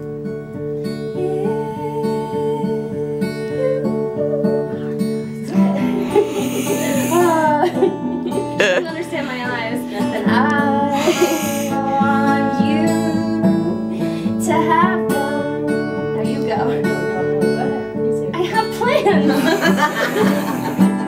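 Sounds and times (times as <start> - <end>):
acoustic guitar chords: 0.0 - 21.0
woman's voice: 5.4 - 13.5, 14.4 - 20.4.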